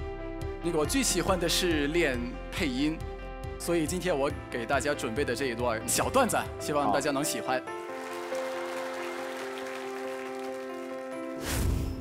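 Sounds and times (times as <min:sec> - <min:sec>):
soft music of slow chords: 0:00.0 - 0:12.0
audience applauding: 0:07.7 - 0:11.4.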